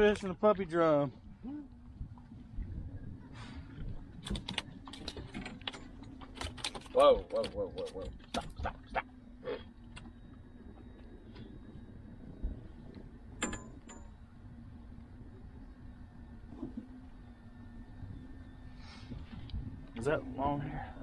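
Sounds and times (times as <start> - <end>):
low wind rumble: 0.0 - 21.0.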